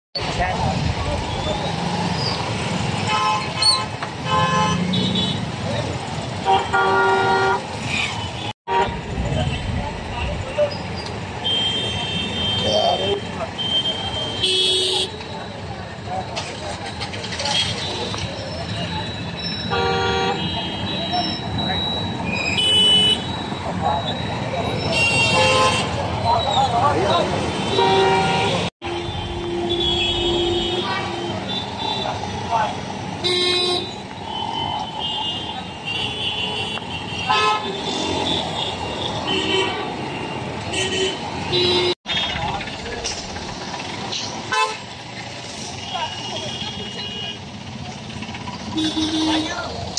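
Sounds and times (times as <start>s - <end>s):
vehicle horns honking: 2.9s - 5.5s, 6.4s - 9.1s, 11.4s - 15.2s, 19.5s - 21.4s, 22.4s - 23.4s, 24.8s - 26.1s, 27.5s - 32.3s, 33.2s - 42.4s, 44.5s - 44.9s, 48.6s - 49.8s.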